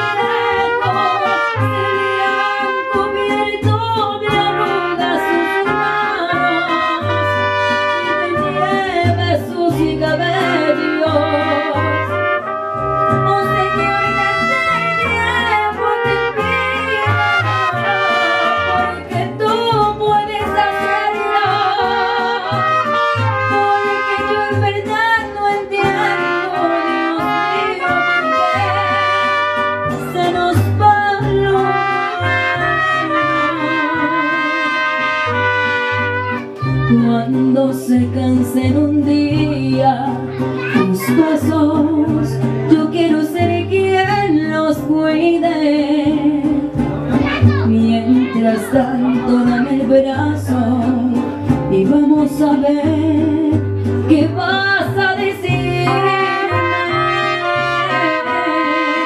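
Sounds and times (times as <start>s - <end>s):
brass melody: 0.0s - 9.2s, 10.0s - 37.4s, 55.7s - 59.0s
strummed guitars: 0.0s - 59.0s.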